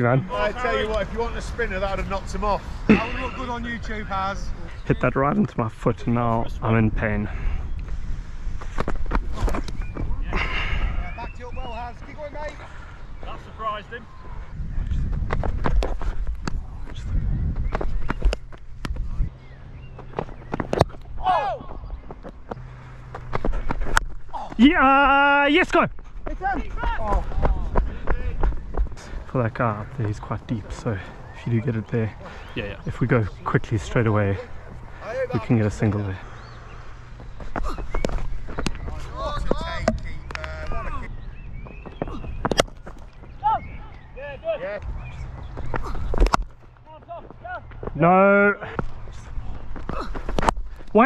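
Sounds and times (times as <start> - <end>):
footsteps on pitch: 25.9 - 31.2.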